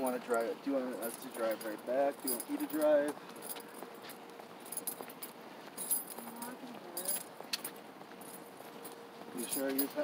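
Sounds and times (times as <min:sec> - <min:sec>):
small metal items jingling: 0:00.0 - 0:10.0.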